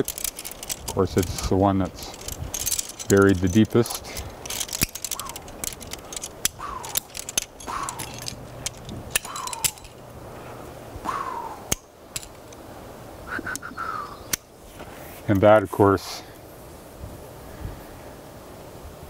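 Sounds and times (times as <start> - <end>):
carabiners clinking: 0.0 - 10.2, 11.7 - 12.7
rope being handled: 0.0 - 10.6.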